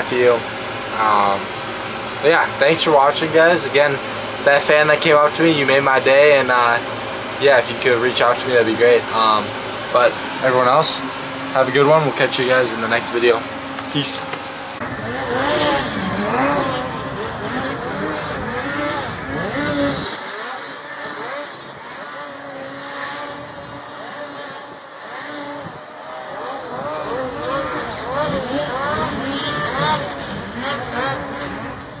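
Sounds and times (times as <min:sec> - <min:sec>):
snowmobile engines revving: 0:00.0 - 0:32.0.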